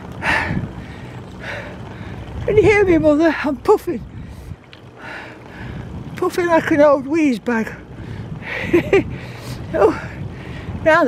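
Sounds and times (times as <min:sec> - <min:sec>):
wind rumble on microphone: 0:00.0 - 0:11.0
heavy breathing: 0:00.2 - 0:02.4, 0:04.1 - 0:06.0.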